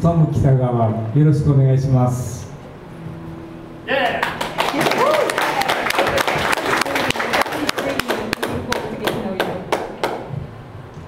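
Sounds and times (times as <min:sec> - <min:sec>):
audience applause: 0:04.1 - 0:10.3.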